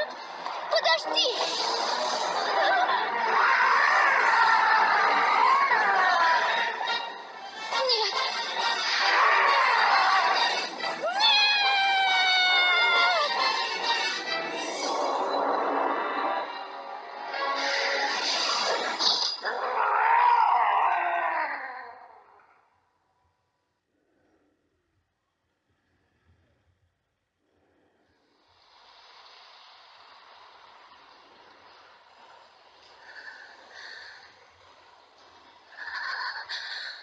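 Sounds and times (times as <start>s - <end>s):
monster screeching: 1.2s - 7.0s, 7.7s - 13.6s, 14.5s - 16.6s, 17.7s - 22.5s, 33.0s - 37.0s
creature's long wavering cry: 2.4s - 7.0s, 8.8s - 13.5s, 19.4s - 22.6s, 35.5s - 37.0s
rain hissing: 28.2s - 37.0s.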